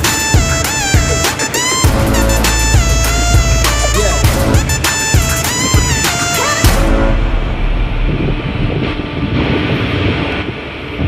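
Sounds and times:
low rumble: 0:01.9 - 0:11.0
wind rushing on microphone: 0:02.2 - 0:11.0.

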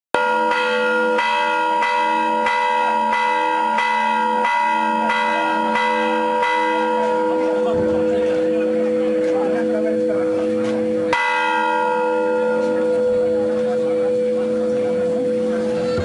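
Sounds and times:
church bell ringing: 0:00.2 - 0:16.0.

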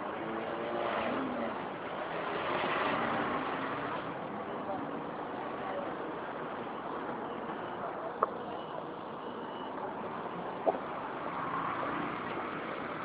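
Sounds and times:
traffic noise: 0:00.0 - 0:13.0.

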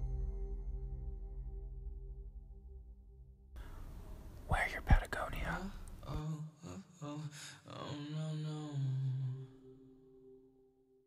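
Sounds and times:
person whispering: 0:04.4 - 0:06.4.

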